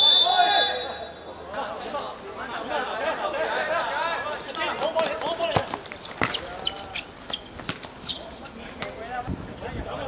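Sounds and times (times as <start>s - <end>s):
players shouting: 0.0s - 5.7s
football kicked and bouncing: 4.8s - 6.6s, 7.3s - 8.0s.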